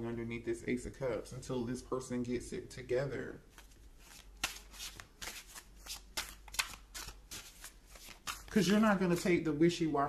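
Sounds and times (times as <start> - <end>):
cards being shuffled: 3.5 - 9.4.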